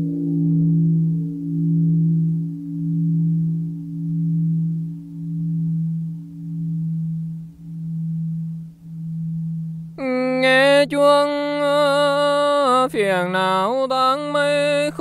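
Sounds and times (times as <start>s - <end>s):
temple bell humming: 0.0s - 12.8s
person chanting: 10.0s - 15.0s.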